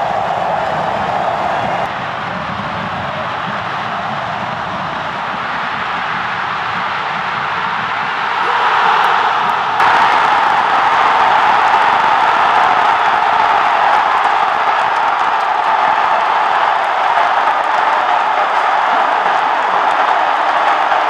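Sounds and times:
stadium crowd cheering: 0:00.0 - 0:21.0.

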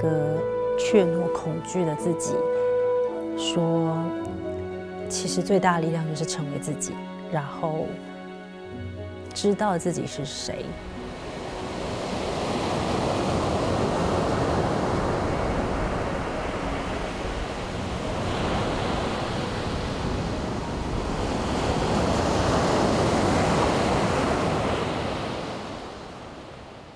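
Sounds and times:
sea surf breaking on beach: 0:10.8 - 0:26.9.

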